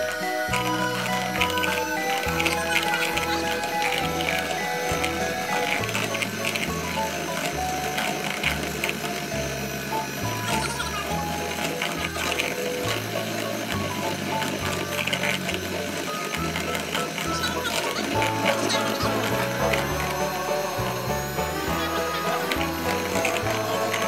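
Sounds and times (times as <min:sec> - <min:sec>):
electric hand mixer whirring: 0:00.0 - 0:24.0.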